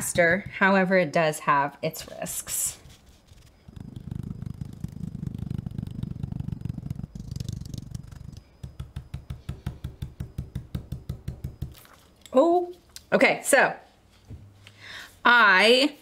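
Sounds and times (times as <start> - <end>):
stencil brush dabbing taps: 0.0 - 0.8, 3.7 - 12.0.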